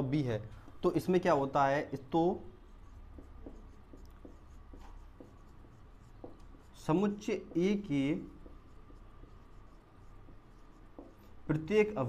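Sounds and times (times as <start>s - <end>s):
faint low hum: 0.0s - 12.0s
marker writing on whiteboard: 0.0s - 12.0s.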